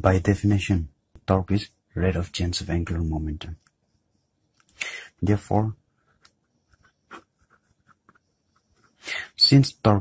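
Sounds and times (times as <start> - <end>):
pen scratching on paper: 6.0 - 9.0.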